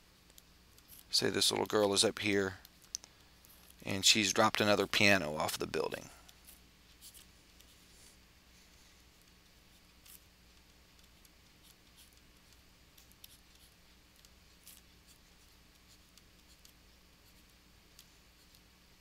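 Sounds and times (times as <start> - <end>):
faint low hum: 0.0 - 19.0.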